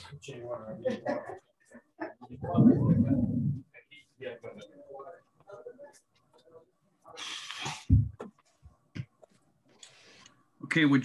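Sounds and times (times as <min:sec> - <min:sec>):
loud low-pitched vocal sound: 0:02.4 - 0:03.6.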